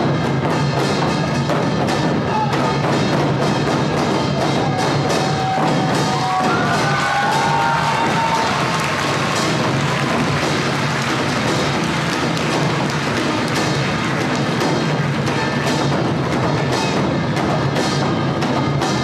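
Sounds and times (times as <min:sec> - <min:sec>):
fast drums and percussion: 0:00.0 - 0:19.0.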